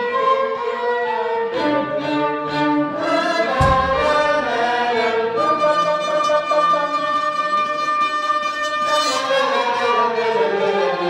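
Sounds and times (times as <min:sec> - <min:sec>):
violins playing a melody: 0:00.0 - 0:11.0
low thump: 0:03.6 - 0:04.8.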